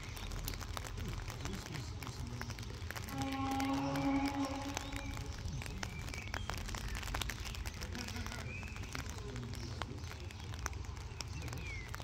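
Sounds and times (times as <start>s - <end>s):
low rumble: 0.0s - 7.2s
distant train horn: 3.1s - 5.3s.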